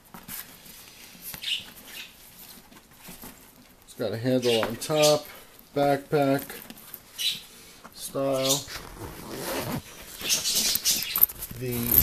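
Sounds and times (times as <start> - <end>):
zipper being pulled open: 8.7 - 9.9, 11.1 - 12.0.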